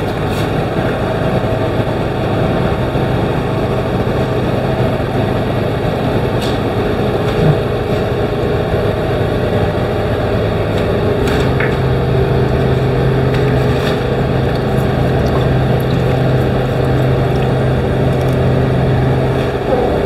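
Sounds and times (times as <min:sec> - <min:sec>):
machine drone: 0:00.0 - 0:20.0.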